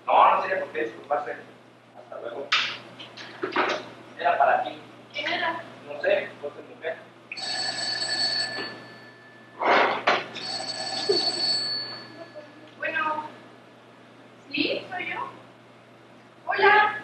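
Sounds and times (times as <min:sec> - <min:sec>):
telephone ringing: 0:07.3 - 0:12.6.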